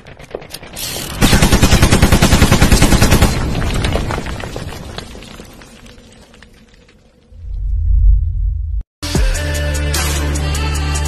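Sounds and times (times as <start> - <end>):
rumble: 0.0 - 8.9
machine-gun burst: 1.2 - 3.7.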